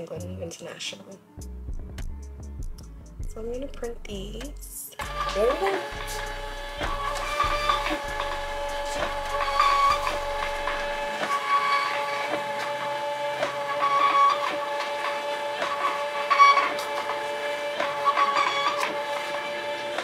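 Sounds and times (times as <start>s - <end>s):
label printer motor whine: 5.0s - 20.0s.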